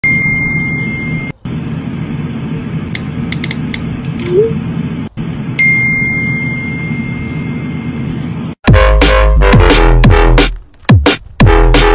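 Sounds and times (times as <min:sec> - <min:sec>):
high steady tone: 0:05.6 - 0:08.5.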